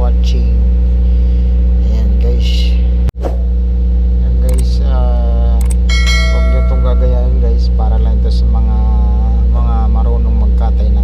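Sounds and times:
low machine hum: 0.0 - 11.0
person's voice: 4.3 - 11.0
brief ringing tone: 5.9 - 7.4.

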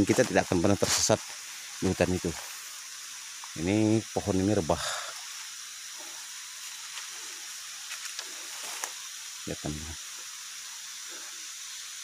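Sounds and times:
insect chorus drone: 0.0 - 12.0.

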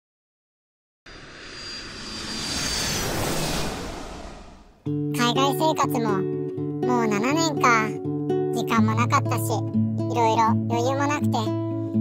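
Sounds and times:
jet airliner engine whine: 1.1 - 4.8.

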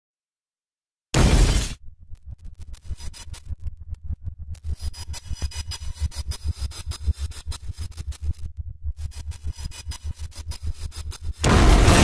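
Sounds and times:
loud noisy crash: 11.4 - 12.0.

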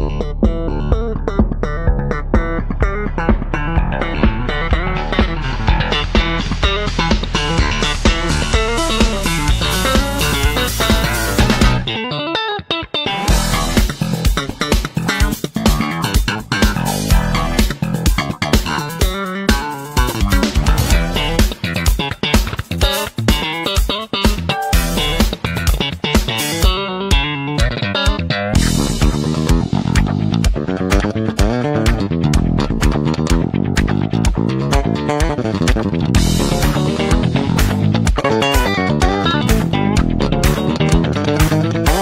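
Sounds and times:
instrumental music with bass and guitar: 0.0 - 42.0.

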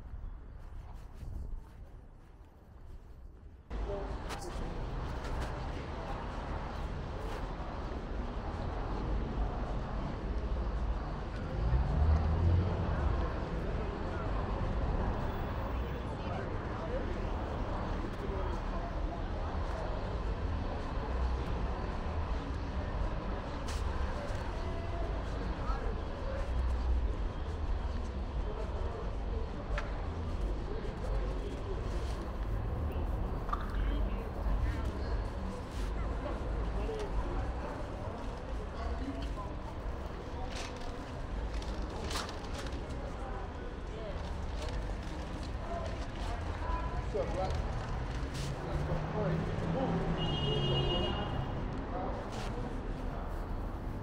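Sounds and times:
steady traffic: 0.0 - 54.0
voices of passersby: 0.0 - 54.0.

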